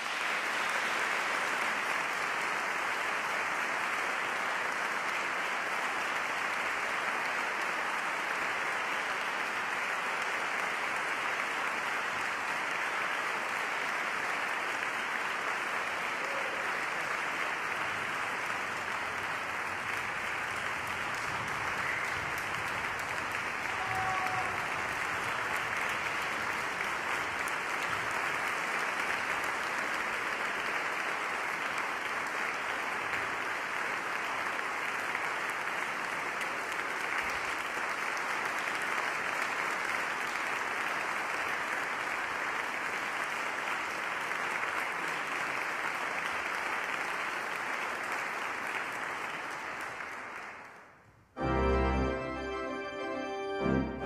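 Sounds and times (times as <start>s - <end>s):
audience applauding: 0.0s - 54.0s.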